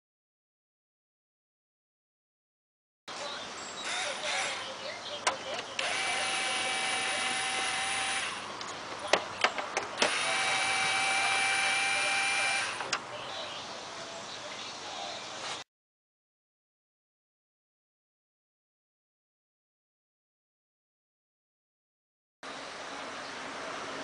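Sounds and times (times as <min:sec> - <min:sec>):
cordless drill running: 0:03.8 - 0:04.6, 0:05.8 - 0:08.5, 0:10.0 - 0:12.9.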